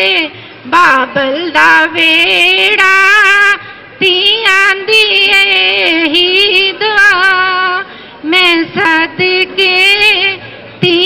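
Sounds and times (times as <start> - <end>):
woman singing through a microphone: 0.0 - 11.0.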